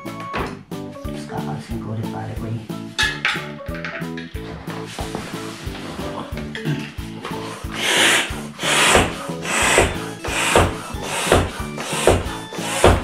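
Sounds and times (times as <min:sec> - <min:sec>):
bicycle pump air rush: 0:07.3 - 0:13.0.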